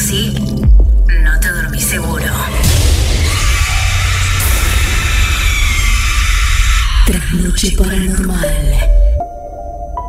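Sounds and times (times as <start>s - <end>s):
deep low rumble: 2.0s - 9.3s
dense hissing swell: 2.6s - 8.2s.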